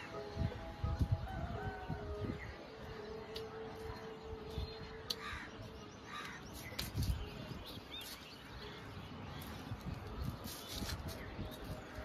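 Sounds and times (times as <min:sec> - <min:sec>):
harsh bird calls: 0:04.7 - 0:09.8.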